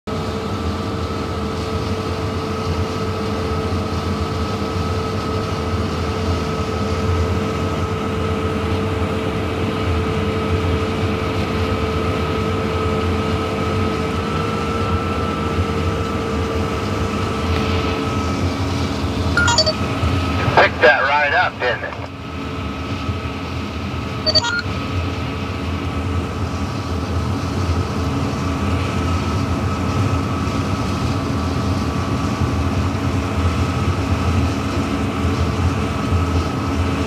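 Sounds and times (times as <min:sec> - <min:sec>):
steady machine whine: 0:16.6 - 0:22.2, 0:24.2 - 0:25.6.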